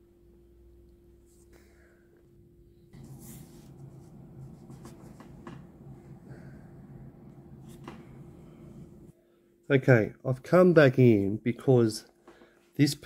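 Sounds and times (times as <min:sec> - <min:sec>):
low steady hum: 0:00.0 - 0:11.5.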